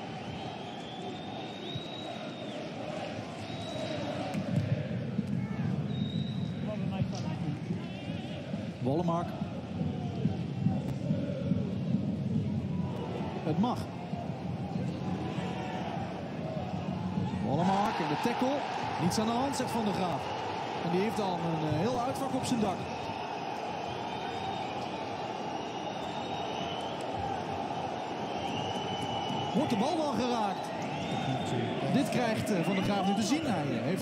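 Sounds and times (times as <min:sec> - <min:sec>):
faint whistles: 0:00.0 - 0:04.2, 0:05.8 - 0:06.7, 0:23.8 - 0:27.4, 0:28.0 - 0:33.6
stadium crowd din: 0:00.0 - 0:34.0.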